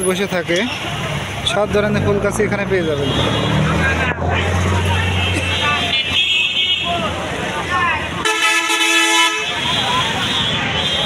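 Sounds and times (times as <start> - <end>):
street market chatter: 0.0 - 11.0
vehicle horn blaring: 8.2 - 11.0.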